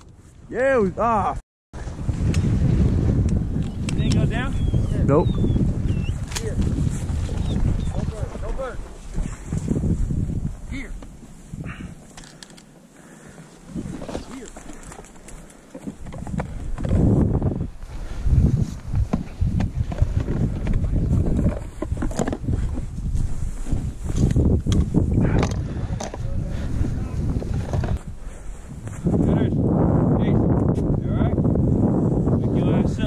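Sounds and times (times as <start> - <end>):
wind buffeting microphone: 0.0 - 12.2, 13.0 - 33.0
rustling in dry grass: 6.0 - 25.1, 25.7 - 29.3.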